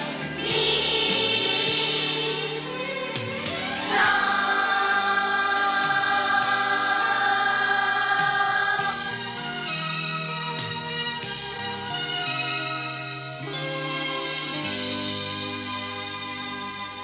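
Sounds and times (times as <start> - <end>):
children's choir singing: 0.0 - 9.7.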